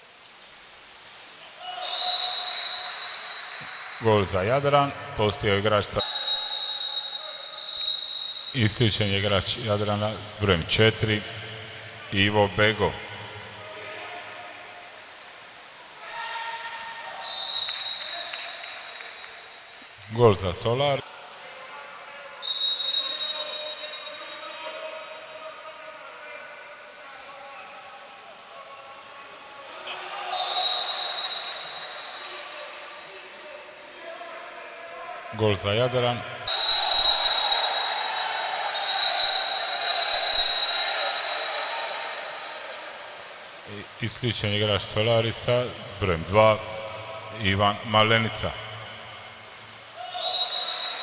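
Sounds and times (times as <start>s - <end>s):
faint background noise: 0.0s - 51.0s
referee's whistle long blast: 1.7s - 3.8s, 6.0s - 8.8s, 17.2s - 19.6s, 22.4s - 24.7s, 30.3s - 32.9s, 36.5s - 42.7s, 50.0s - 51.0s.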